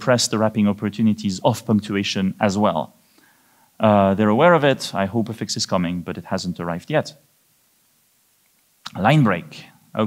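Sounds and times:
man speaking: 0.0 - 3.0, 3.8 - 7.2, 8.8 - 10.0.

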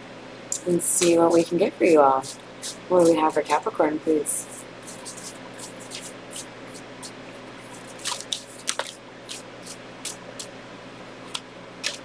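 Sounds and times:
cards being shuffled: 4.4 - 10.5, 11.3 - 12.0.

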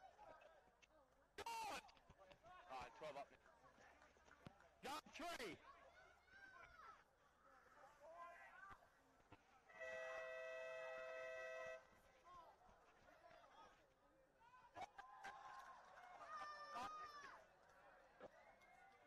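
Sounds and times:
two-tone horn: 9.7 - 11.9.

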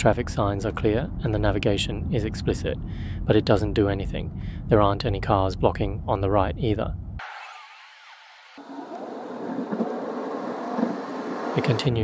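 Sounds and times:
tyre and road noise in car cabin: 8.6 - 12.0.

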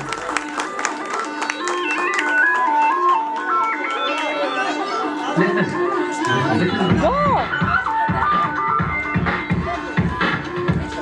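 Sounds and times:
dance music: 0.0 - 11.0.

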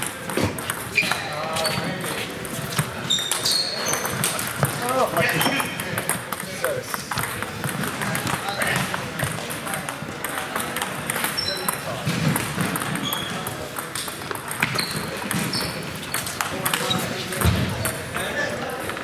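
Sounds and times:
murmur of voices: 0.0 - 19.0
table tennis balls clicking: 0.0 - 19.0.

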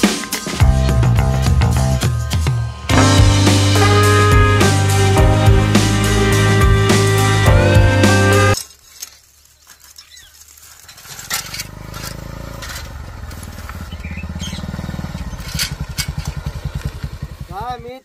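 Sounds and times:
motorcycle engine approaching: 10.6 - 18.0.

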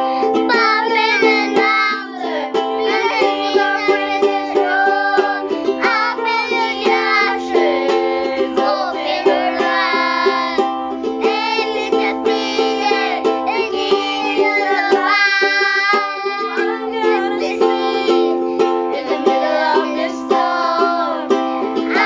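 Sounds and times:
ukulele strumming: 0.0 - 22.0
woman and children singing: 0.0 - 22.0.

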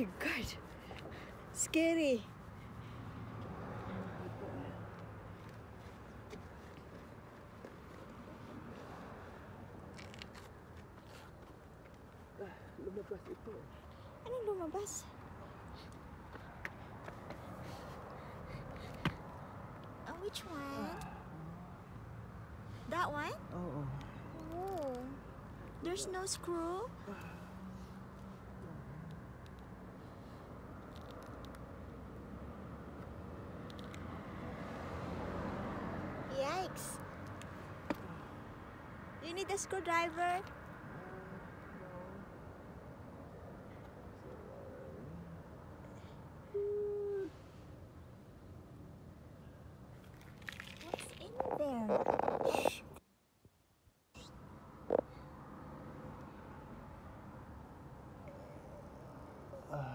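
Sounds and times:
road traffic rumble: 0.0 - 53.0, 54.0 - 59.9
person's wordless vocal sounds: 58.3 - 59.9.

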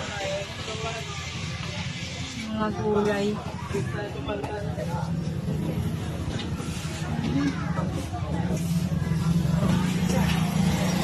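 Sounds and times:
faint voices: 0.0 - 11.0
small motorcycle engine running: 0.0 - 11.0.

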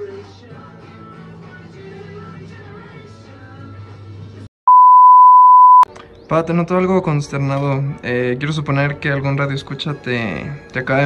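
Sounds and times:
electronic beep: 4.7 - 5.9
background music: 5.9 - 11.0.

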